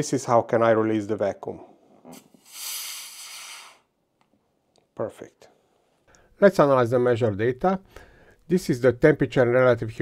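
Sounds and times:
air hissing into container: 2.1s - 3.9s.

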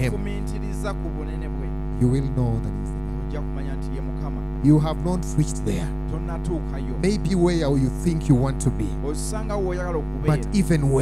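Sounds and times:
electrical mains hum: 0.0s - 11.0s
faint speech: 0.0s - 11.0s.

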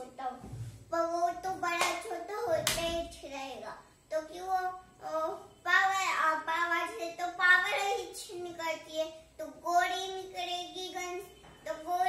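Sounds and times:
sharp hand claps: 1.7s - 3.0s.

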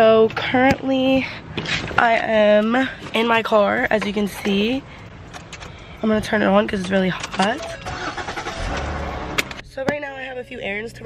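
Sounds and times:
car engine starting: 1.4s - 11.0s
sharp clicks: 4.0s - 5.8s.

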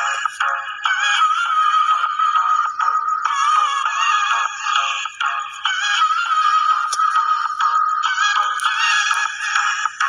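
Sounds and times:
music with synthetic vocal melody: 0.0s - 10.0s.

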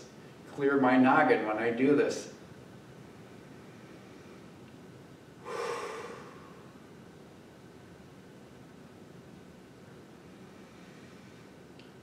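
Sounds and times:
man breathing deeply: 5.4s - 6.9s.

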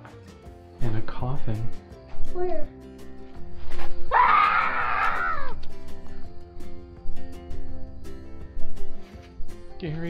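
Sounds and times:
background music: 0.0s - 10.0s
high-pitched scream: 4.1s - 5.6s.

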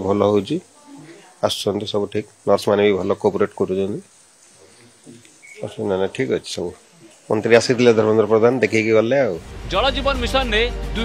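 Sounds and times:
man speaking: 0.0s - 0.7s, 1.4s - 4.1s, 4.7s - 11.0s
high-pitched chirp: 5.3s - 5.8s.

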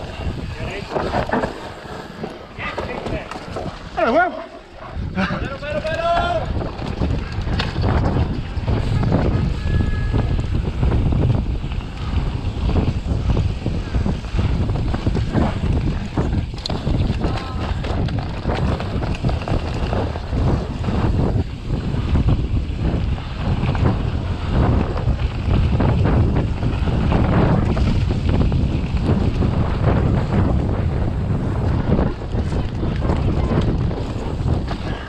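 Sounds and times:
bike knocking and rattling: 0.0s - 4.1s, 5.3s - 35.0s
tyres rumbling on dirt: 0.0s - 4.3s, 5.1s - 35.0s
wind on microphone: 0.0s - 35.0s.

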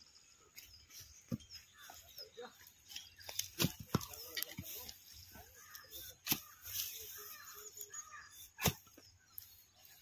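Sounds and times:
faint bird chirps: 0.0s - 10.0s
hoe striking hard soil: 3.1s - 5.0s, 6.1s - 6.9s.

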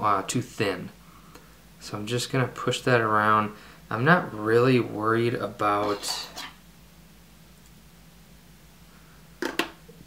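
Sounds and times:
faint hum: 0.0s - 10.0s.

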